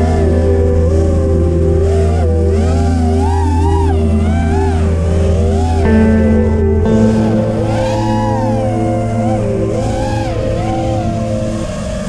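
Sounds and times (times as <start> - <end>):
quadcopter motors whining: 0.0 - 5.9, 6.9 - 12.0.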